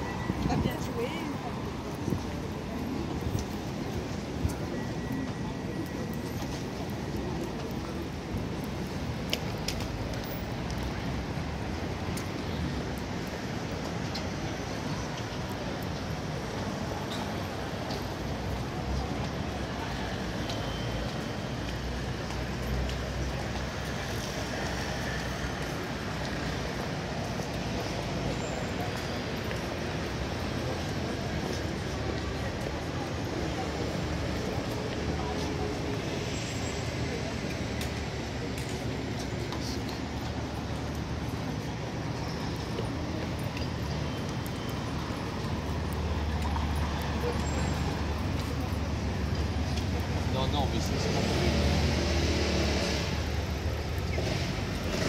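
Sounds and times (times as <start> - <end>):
indistinct voices of passers-by: 0.0 - 55.0
road traffic hum: 0.0 - 55.0
vehicle low rumble: 0.0 - 55.0.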